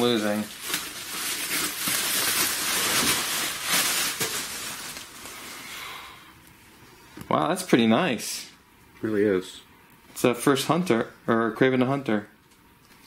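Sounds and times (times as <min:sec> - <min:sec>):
bubble wrap crinkling: 0:00.0 - 0:05.6.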